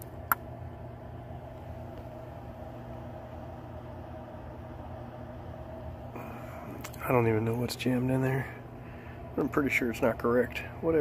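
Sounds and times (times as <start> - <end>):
air handler blower hum: 0.0 - 11.0.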